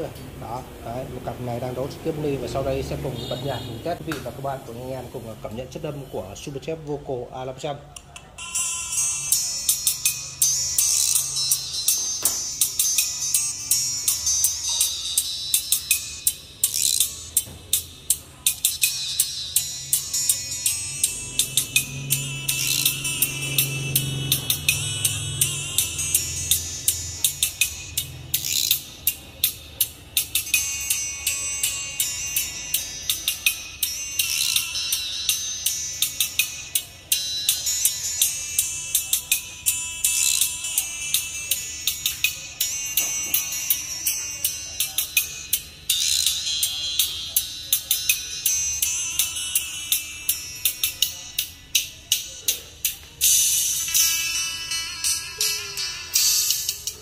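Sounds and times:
bright treble-heavy music: 0.0 - 57.0.

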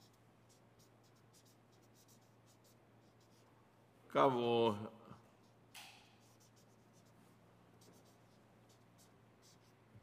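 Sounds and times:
marker writing on paper: 0.0 - 3.5, 5.3 - 7.2, 7.8 - 10.0.

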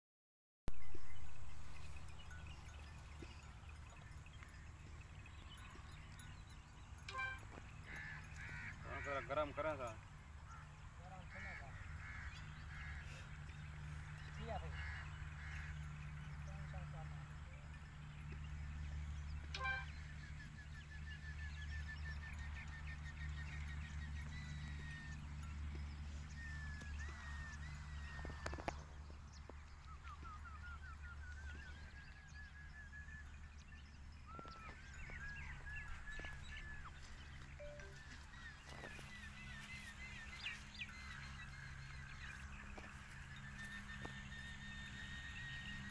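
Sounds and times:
birds calling: 0.8 - 45.9.

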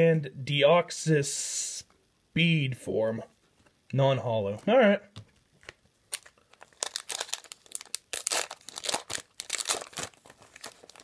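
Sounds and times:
foil wrapper crinkling: 6.1 - 11.0.

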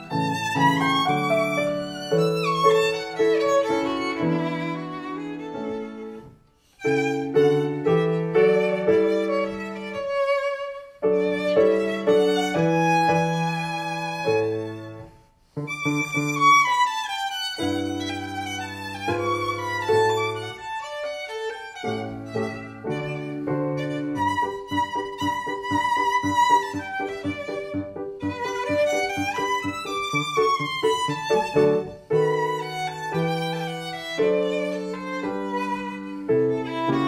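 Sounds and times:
piano accompaniment: 0.0 - 37.0
solo violin bowing: 0.0 - 37.0.

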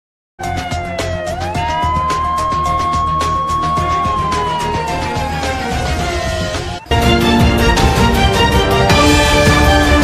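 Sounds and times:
siren-like synth tone: 0.5 - 6.9
intro music with drum hits: 0.5 - 10.0.

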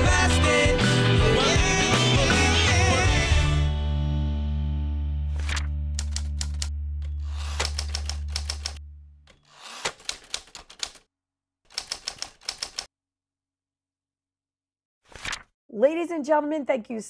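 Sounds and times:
typewriter key clicks: 5.4 - 8.8, 9.6 - 11.0, 11.7 - 12.9.

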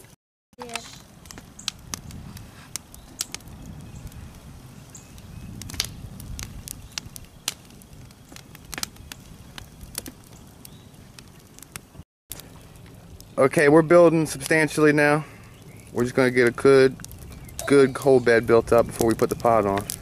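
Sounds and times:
wood fire crackling: 0.0 - 20.0
sharp pops of burning wood: 0.6 - 20.0.

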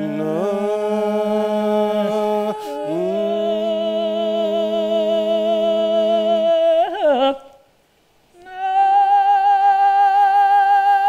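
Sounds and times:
men singing a held note: 0.0 - 7.7.

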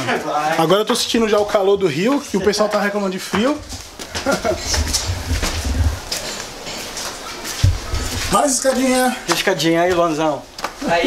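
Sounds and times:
footsteps on concrete steps: 0.1 - 11.0
scuffs and knocks: 1.0 - 10.8
handheld microphone rumble: 3.4 - 8.5.

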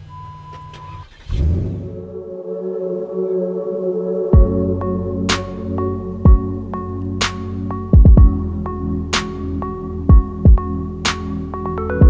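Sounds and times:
car engine starting and running: 0.0 - 2.2.

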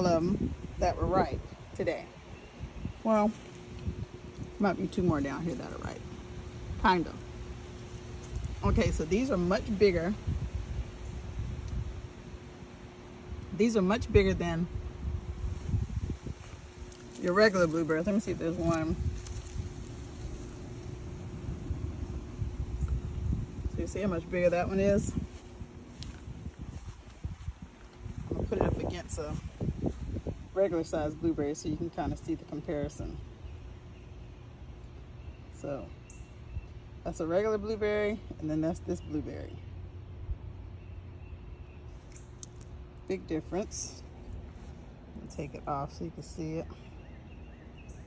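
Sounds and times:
wind buffeting microphone: 0.0 - 7.4, 8.1 - 12.5, 13.3 - 33.1
faint steady hum: 0.0 - 48.0
steady low rumble: 0.0 - 48.0.

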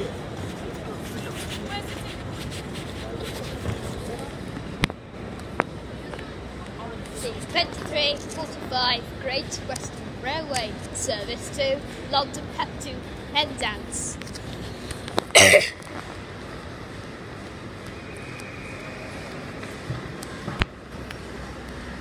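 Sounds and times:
crowd hubbub: 0.0 - 22.0
person speaking: 7.1 - 14.5.

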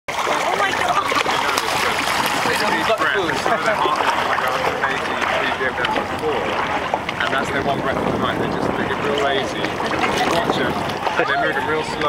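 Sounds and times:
people talking: 0.1 - 6.6, 7.2 - 12.0
water splashing: 0.1 - 12.0.

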